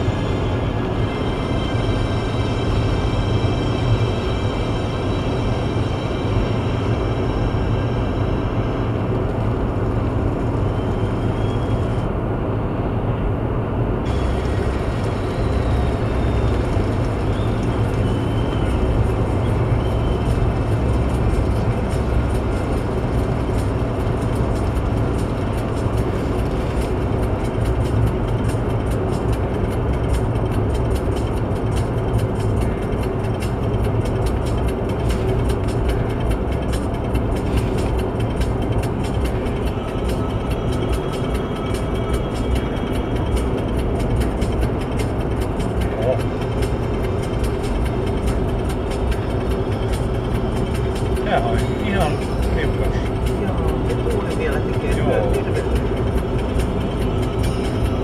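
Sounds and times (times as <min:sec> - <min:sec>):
tyre road noise inside car: 0:00.0 - 0:58.0.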